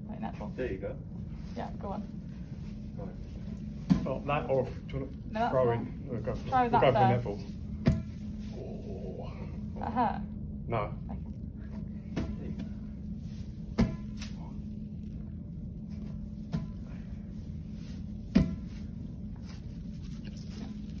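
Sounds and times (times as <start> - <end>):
steady low hum: 0.0 - 21.0
exercise ball slapping hands: 7.8 - 8.4, 12.1 - 12.8, 13.6 - 14.6, 18.2 - 19.6.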